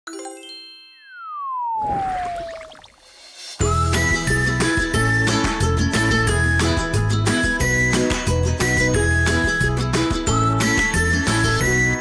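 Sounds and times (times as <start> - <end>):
tone sliding down in pitch: 1.0 - 3.0
whoosh: 1.8 - 3.7.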